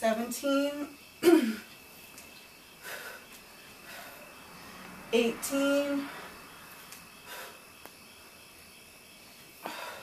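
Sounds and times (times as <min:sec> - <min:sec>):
woman breathing: 0:02.7 - 0:05.0, 0:05.9 - 0:08.0, 0:09.5 - 0:10.0.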